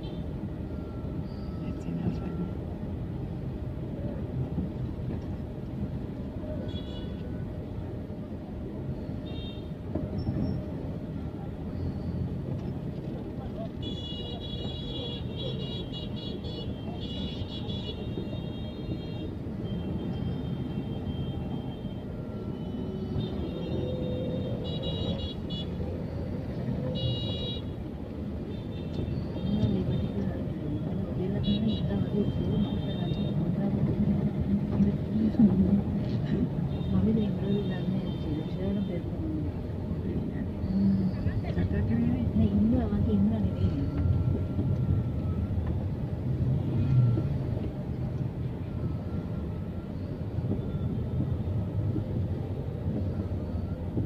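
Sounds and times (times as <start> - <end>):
traffic engines rumbling: 0.0 - 54.0
vehicle horns beeping: 13.8 - 25.8, 27.0 - 27.8
voices: 29.4 - 44.7.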